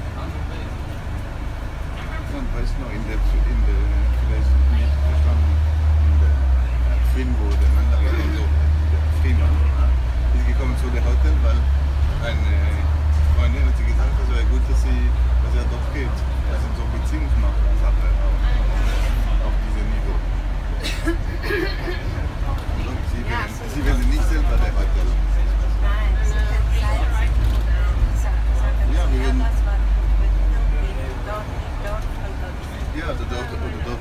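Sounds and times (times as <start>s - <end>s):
bus engine rumble: 0.0s - 34.0s
passengers talking: 0.0s - 34.0s.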